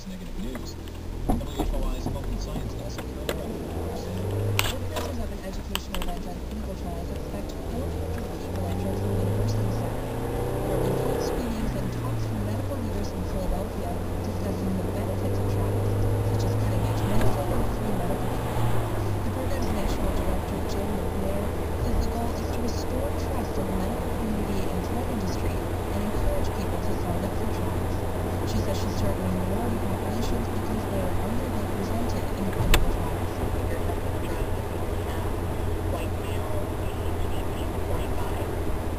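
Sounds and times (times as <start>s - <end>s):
car engine and tyres droning: 0.0s - 38.9s.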